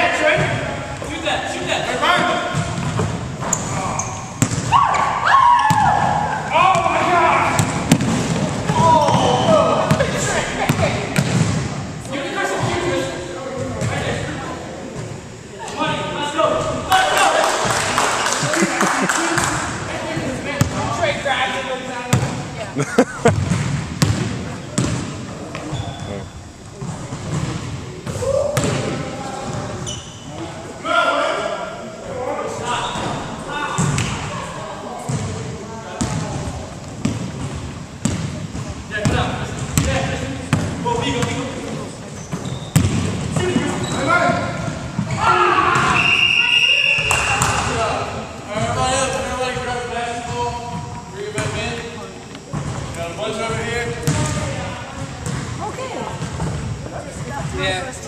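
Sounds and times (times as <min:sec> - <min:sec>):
shoe squeak: 0:03.4 - 0:04.4, 0:25.6 - 0:26.5, 0:29.8 - 0:30.4, 0:42.2 - 0:42.8, 0:43.6 - 0:44.2
basketballs bouncing on wood floor: 0:23.2 - 0:25.8, 0:36.0 - 0:41.4, 0:42.3 - 0:45.2, 0:54.0 - 0:55.6.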